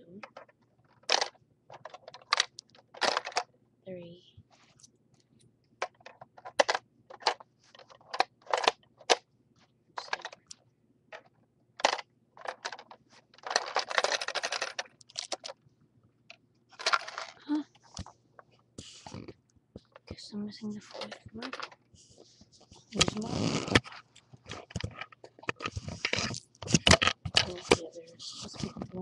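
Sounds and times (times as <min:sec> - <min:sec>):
gumballs rattling: 0:00.2 - 0:03.5, 0:10.0 - 0:15.6, 0:16.7 - 0:18.1, 0:20.8 - 0:21.9
plastic clicks and knocks: 0:00.2 - 0:03.5, 0:05.8 - 0:09.2, 0:10.0 - 0:15.6, 0:23.0 - 0:27.8.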